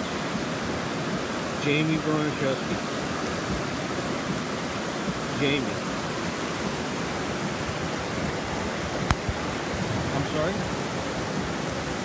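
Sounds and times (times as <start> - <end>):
floodwater rushing down street: 0.0 - 12.0.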